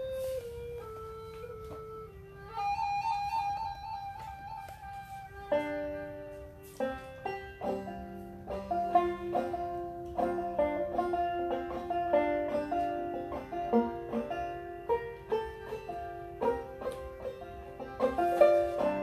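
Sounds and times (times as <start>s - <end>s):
banjo picking: 0.0s - 19.0s
recorder melody: 0.0s - 19.0s.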